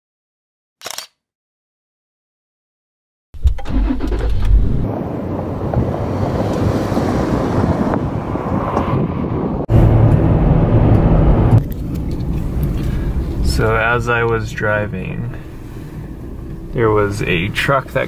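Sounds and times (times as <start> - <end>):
car engine starting: 3.4 - 8.0, 9.7 - 18.0
car cabin engine and road noise: 3.4 - 18.0.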